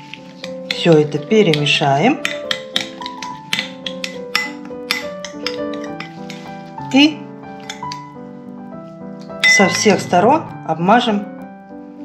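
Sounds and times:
light background music: 0:00.0 - 0:12.0
metal spoon clicking against glass bowl: 0:01.5 - 0:05.9.

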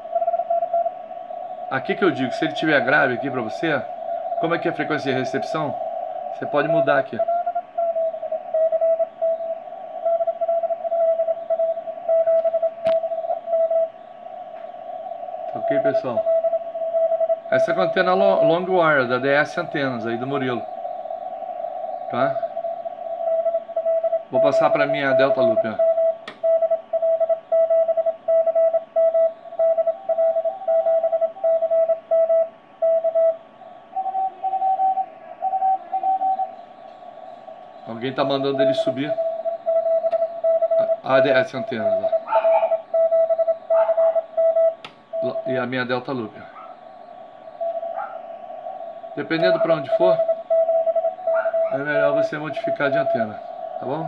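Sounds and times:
morse code tone: 0:00.0 - 0:20.8, 0:22.0 - 0:54.0
radio band hiss: 0:00.0 - 0:54.0
weaker higher-pitched morse signal: 0:00.0 - 0:54.0
sharp click: 0:26.2 - 0:26.4.

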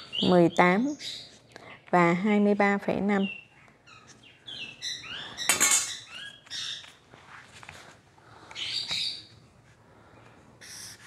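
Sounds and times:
bird chirping and squawking: 0:00.0 - 0:01.4, 0:03.2 - 0:07.0, 0:08.6 - 0:09.3
ruler and marker on paper: 0:10.6 - 0:11.0.

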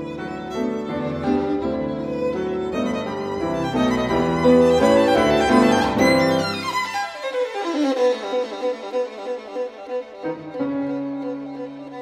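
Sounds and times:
violin music: 0:00.0 - 0:12.0.

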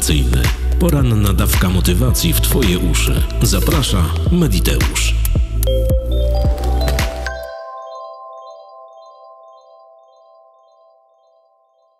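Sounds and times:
high chime-like notes: 0:05.7 - 0:11.9.

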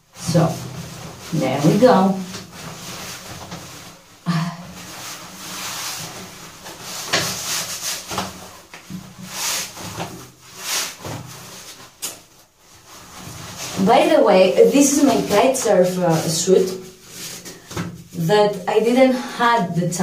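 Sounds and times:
wetsuit rustling against skin: 0:00.1 - 0:19.0.

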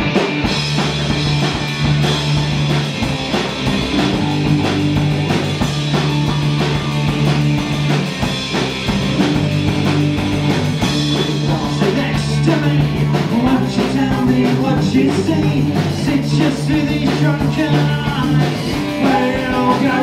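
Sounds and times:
drum kit beat: 0:00.0 - 0:20.0
electric bass guitar: 0:00.0 - 0:20.0
electric guitar: 0:00.0 - 0:20.0.

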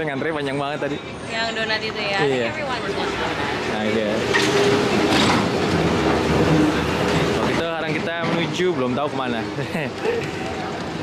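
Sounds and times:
train running past: 0:00.0 - 0:11.0.

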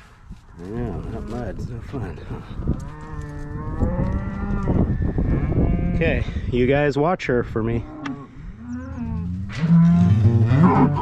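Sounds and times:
cow mooing: 0:02.8 - 0:06.0, 0:07.8 - 0:11.0.

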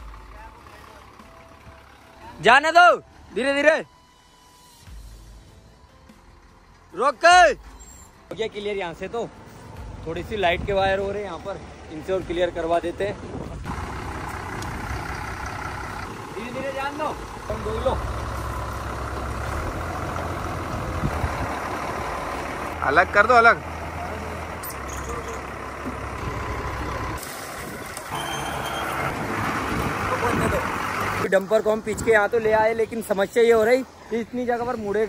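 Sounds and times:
diesel truck engine at low revs: 0:00.0 - 0:35.0
short high beep: 0:28.1 - 0:29.1.

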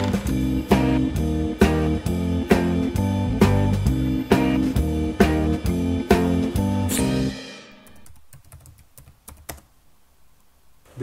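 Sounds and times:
guitar music: 0:00.0 - 0:07.5
typing on computer keyboard: 0:08.0 - 0:09.7.

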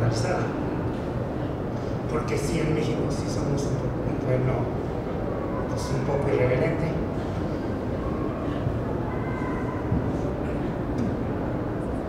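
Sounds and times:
low room rumble and hum: 0:00.0 - 0:12.0.

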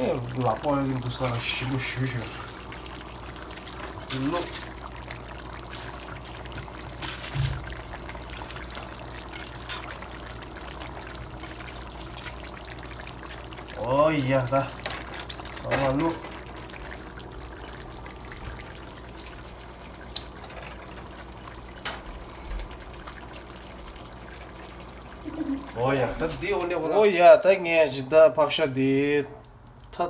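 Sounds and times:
water pouring into a pan: 0:00.0 - 0:27.2
gravy bubbling: 0:00.0 - 0:30.0.

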